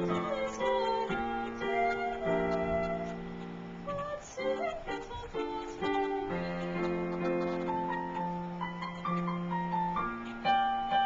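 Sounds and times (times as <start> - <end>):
girl singing: 0.0 - 9.6
piano chords: 0.0 - 11.0.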